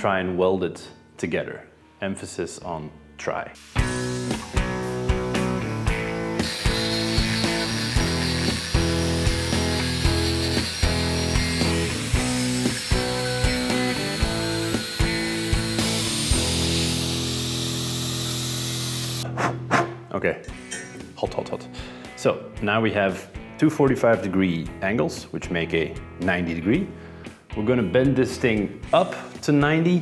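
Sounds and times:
background music with steady beat: 0:03.4 - 0:30.0
angle grinder cutting steel: 0:03.8 - 0:19.4.

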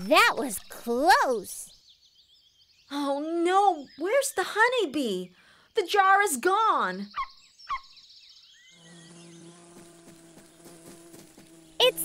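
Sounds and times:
cartoon bee buzzing: 0:08.7 - 0:12.0.

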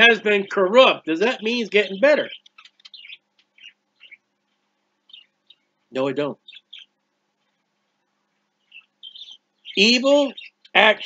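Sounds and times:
high bird chirps: 0:00.0 - 0:04.3, 0:05.0 - 0:07.0, 0:08.6 - 0:11.0
faint steady hum: 0:00.0 - 0:11.0.

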